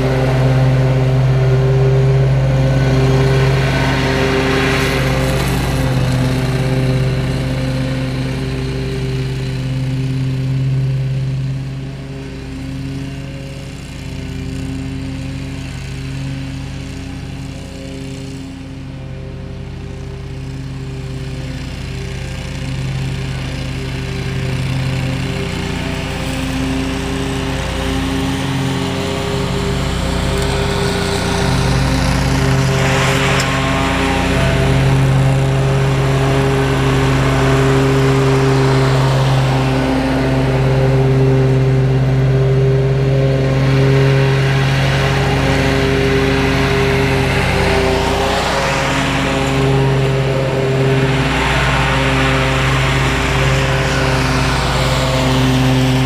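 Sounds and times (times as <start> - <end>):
mower engine running: 0.0 - 56.0.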